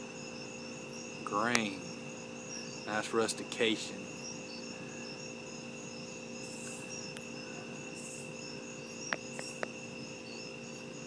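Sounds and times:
night insects chirping: 0.0 - 11.0.

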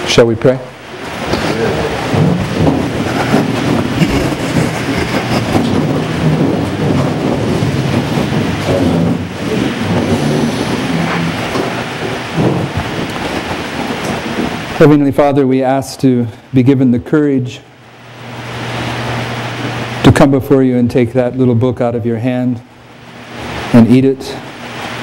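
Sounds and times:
low murmuring: 0.4 - 16.1
shuffling and rustling: 1.2 - 15.0.

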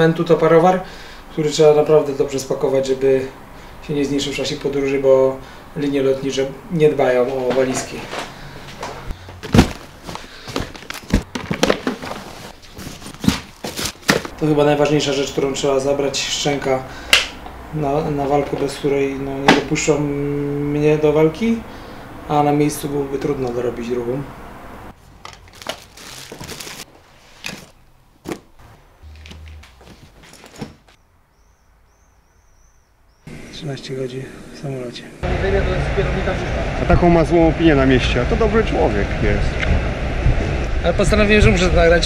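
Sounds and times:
sharp knocks and thunks: 9.4 - 9.9
rustling fabric: 9.4 - 14.4, 25.0 - 31.0.

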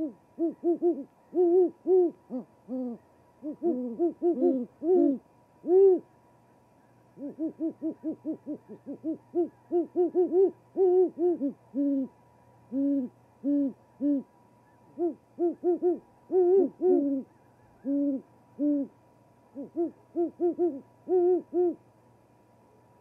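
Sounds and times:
owls hooting: 0.0 - 6.1, 6.8 - 21.8.

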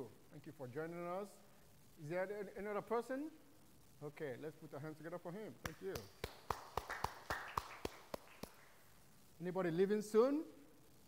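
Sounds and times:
people clapping: 5.6 - 8.8.

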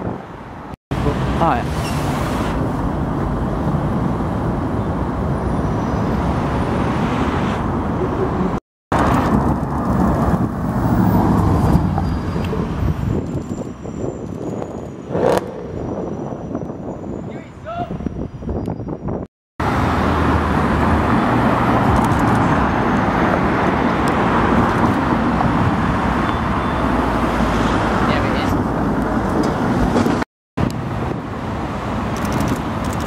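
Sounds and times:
bus and cars running: 0.0 - 33.0.

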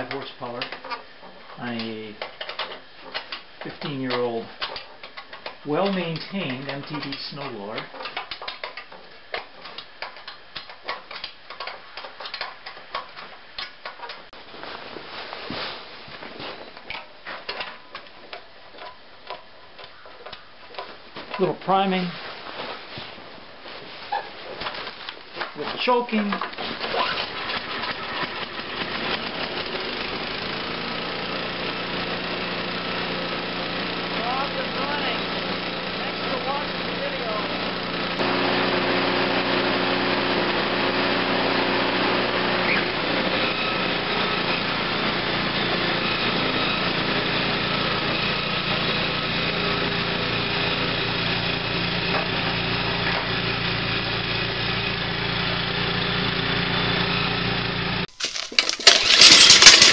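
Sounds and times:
recoil cord pull-start: 1.6 - 14.2, 25.8 - 44.5, 58.1 - 59.9
snow blower engine running: 27.0 - 59.9.

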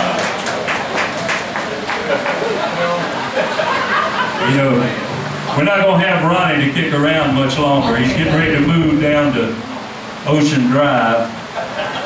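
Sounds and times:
audience hand claps: 0.0 - 2.5
low crowd murmur: 0.0 - 12.0.

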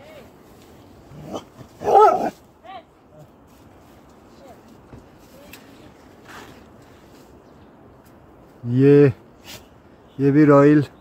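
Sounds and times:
dog barking: 1.3 - 2.3.

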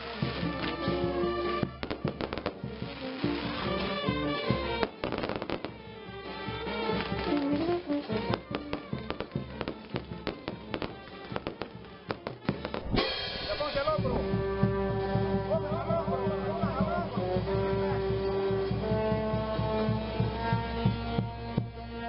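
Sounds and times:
fireworks crackling and banging: 0.0 - 21.1
music playing: 0.0 - 22.0.

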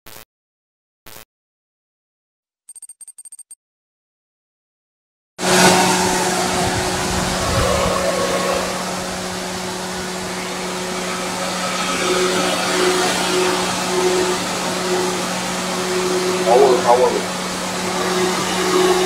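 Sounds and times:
electric fan rushing air: 5.4 - 19.0
low hum: 5.4 - 19.0.

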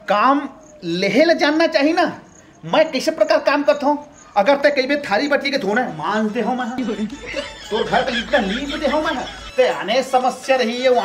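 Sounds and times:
man talking: 0.1 - 11.0
man chuckling: 6.6 - 10.1.

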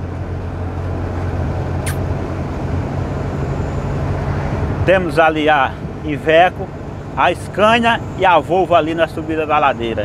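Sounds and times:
diesel engine droning: 0.0 - 10.0
tyre and road noise: 0.0 - 10.0.

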